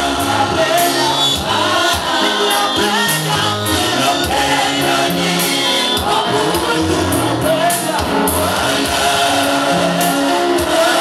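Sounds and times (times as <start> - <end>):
woman singing into microphone: 0.0 - 8.6
group of singers: 0.0 - 11.0
instrumental accompaniment: 0.0 - 11.0.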